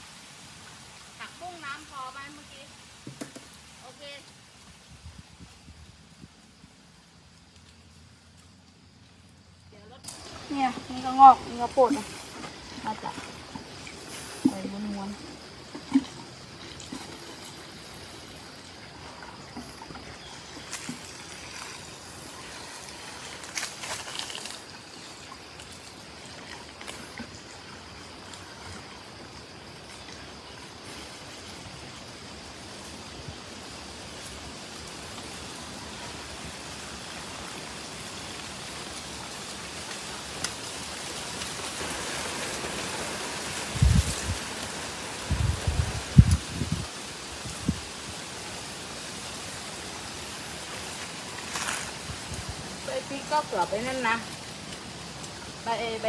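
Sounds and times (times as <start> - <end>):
water pouring onto soil: 10.0 - 30.7, 35.0 - 53.4.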